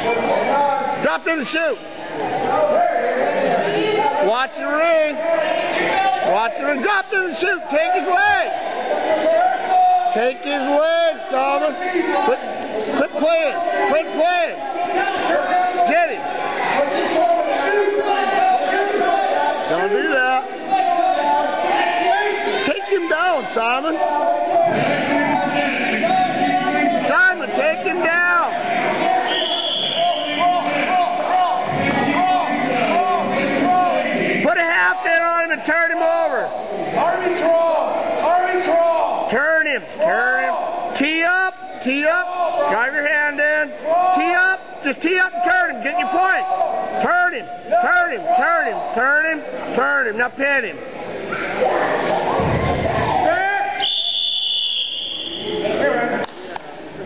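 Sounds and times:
people shouting encouragement: 0:00.0 - 0:49.6, 0:51.4 - 0:53.9
voices: 0:00.0 - 0:57.0.

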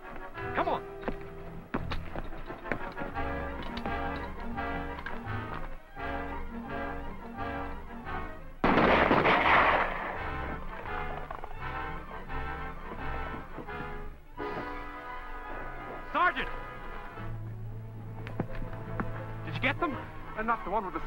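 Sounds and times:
orchestral film score: 0:00.0 - 0:21.0
gunfire: 0:08.6 - 0:11.4.

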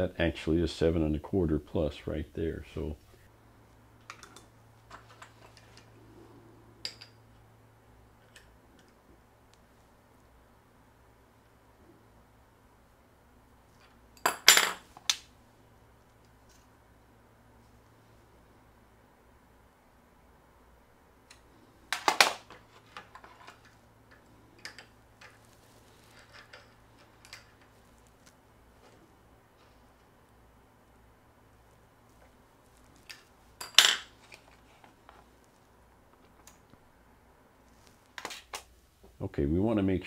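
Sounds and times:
metal tools clinking: 0:26.0 - 0:27.6.

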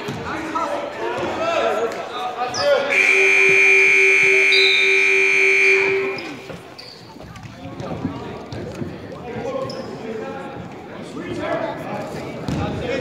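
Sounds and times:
crowd voices: 0:00.0 - 0:13.0
scoreboard buzzer blast: 0:02.9 - 0:06.5.

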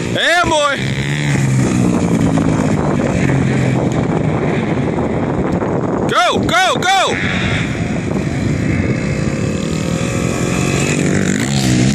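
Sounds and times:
dirt bike engine running: 0:00.0 - 0:06.1, 0:07.1 - 0:11.9
wind buffeting microphone: 0:00.0 - 0:11.9.

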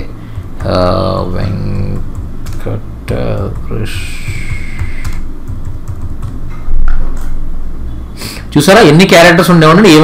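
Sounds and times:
computer keyboard typing: 0:00.4 - 0:07.3.

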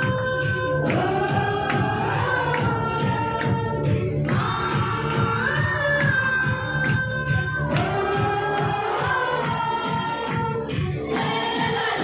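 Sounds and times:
group singing devotional song: 0:00.0 - 0:12.0
quick steady beat: 0:00.0 - 0:12.0.

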